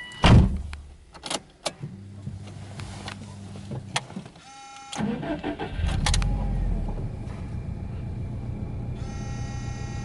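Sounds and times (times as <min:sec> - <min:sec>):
fuel pump electric hum: 0:01.8 - 0:10.0.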